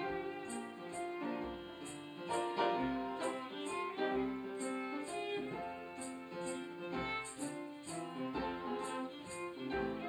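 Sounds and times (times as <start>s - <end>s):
fiddle playing a waltz: 0.0s - 10.0s
tambourine jingles: 0.0s - 10.0s.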